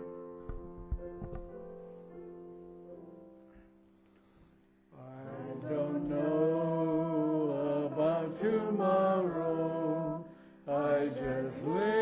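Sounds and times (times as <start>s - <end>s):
piano playing hymn chords: 0.0s - 12.0s.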